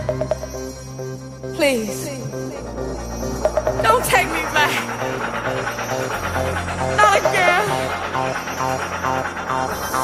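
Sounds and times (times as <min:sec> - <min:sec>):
sustained synth notes: 0:00.0 - 0:10.0.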